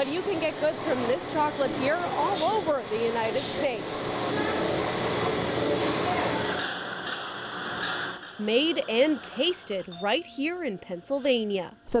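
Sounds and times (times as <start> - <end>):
production line machinery running: 0.0 - 11.4
thin high machine whines: 0.0 - 12.0.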